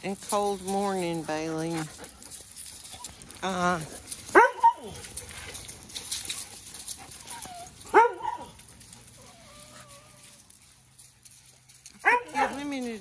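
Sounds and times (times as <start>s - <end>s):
dog barking: 4.3s - 5.0s, 7.9s - 8.6s, 12.0s - 12.6s
dog whining: 7.1s - 8.5s, 9.2s - 10.5s.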